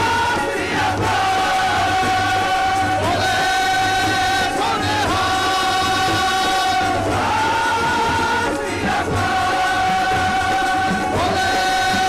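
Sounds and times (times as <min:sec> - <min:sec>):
group singing in unison: 0:00.0 - 0:12.0
harmonium: 0:00.0 - 0:12.0.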